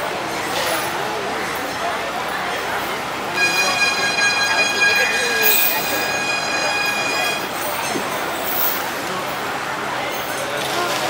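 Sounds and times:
faint voices: 0:00.0 - 0:11.0
high-pitched whining tone: 0:03.4 - 0:07.5.

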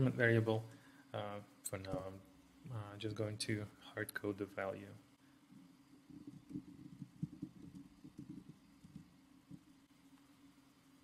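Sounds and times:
low steady hum: 0:00.0 - 0:11.0
computer keyboard typing: 0:06.2 - 0:09.0.

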